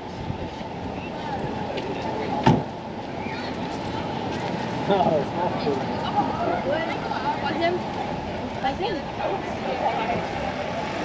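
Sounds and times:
passersby talking: 0.0 - 11.0
traffic noise: 0.0 - 11.0.

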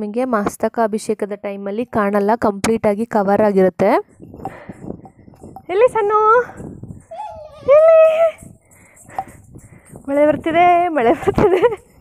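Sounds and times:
woman making high-pitched vocal sounds: 7.1 - 8.5
woman laughing: 7.7 - 8.4, 11.0 - 12.0.

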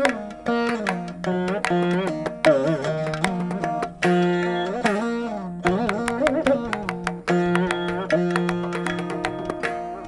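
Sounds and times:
ghatam clay pot strokes: 0.0 - 10.0
mridangam drum strokes: 0.0 - 10.0
veena plucked melody: 0.0 - 10.0.

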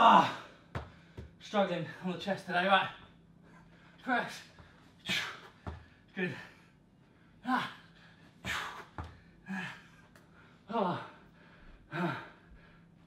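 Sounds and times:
man breathing hard and grunting: 5.0 - 12.9.

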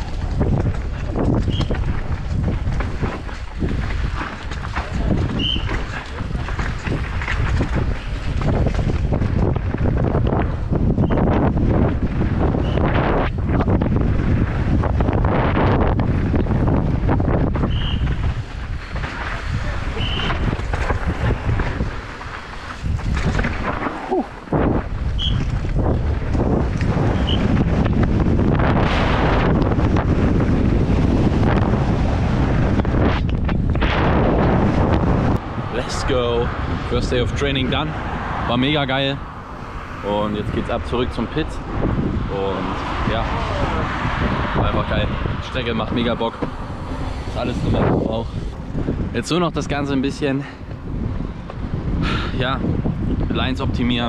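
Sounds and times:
bike clattering over bumps: 0.0 - 35.4
bike tyres on loose dirt: 0.0 - 54.0
wind buffeting microphone: 0.0 - 54.0.

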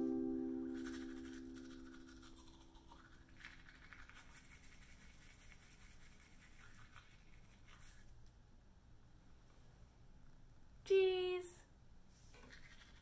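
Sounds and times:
ukulele chord: 0.0 - 2.2
toothbrush scrubbing teeth: 0.7 - 8.2, 12.4 - 13.0.

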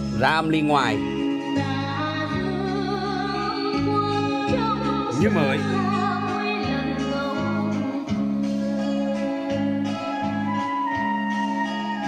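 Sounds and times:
person singing: 1.0 - 12.0.

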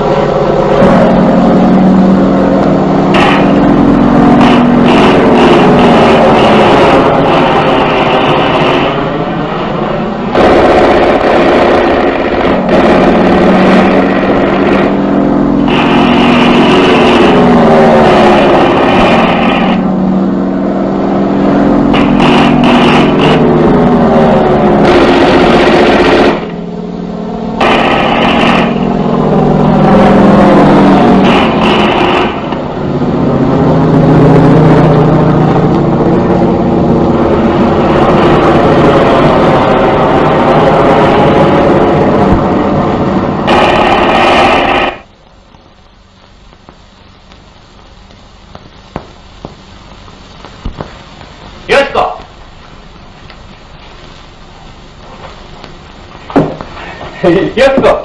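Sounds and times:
propeller plane engines droning: 0.0 - 58.0.

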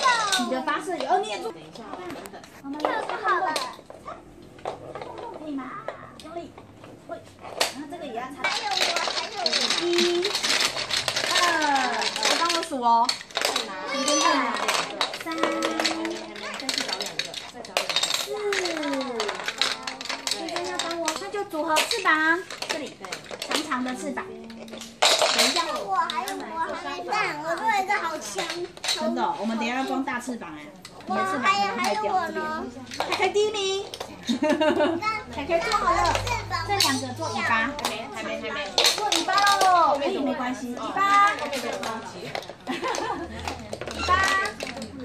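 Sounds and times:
plastic building blocks clicking: 0.0 - 45.0
young children chattering: 0.0 - 45.0.

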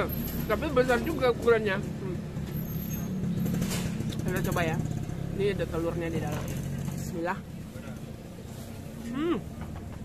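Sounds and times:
background noise: 0.0 - 10.0
vehicle engine rumbling: 0.0 - 10.0.

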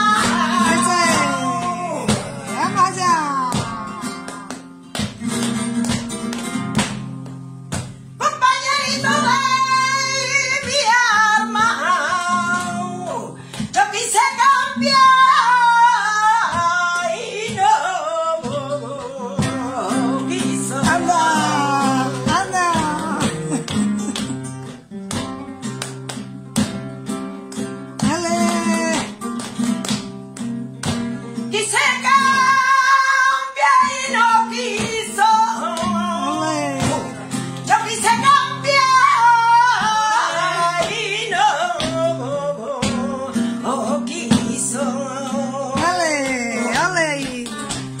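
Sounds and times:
woman singing: 0.0 - 4.7, 8.2 - 23.8, 27.9 - 29.2, 30.8 - 48.0
flamenco guitar strumming chords: 0.0 - 48.0.

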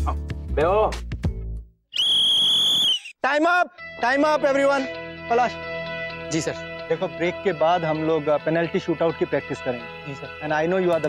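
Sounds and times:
sports whistle blast: 1.9 - 3.2.

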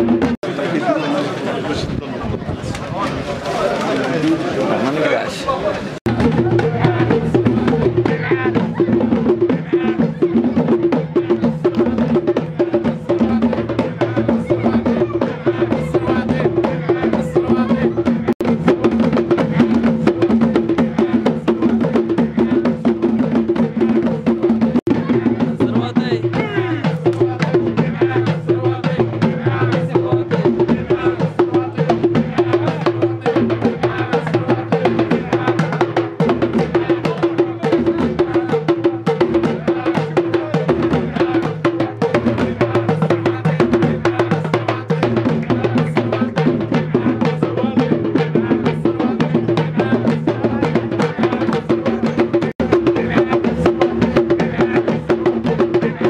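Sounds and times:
frame drums in fast rhythm: 0.0 - 1.1, 3.2 - 56.0
voices chanting: 0.0 - 56.0.

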